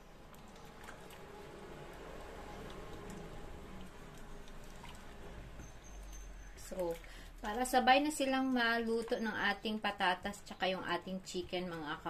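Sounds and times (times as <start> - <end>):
food simmering in a wok: 0.0 - 7.4.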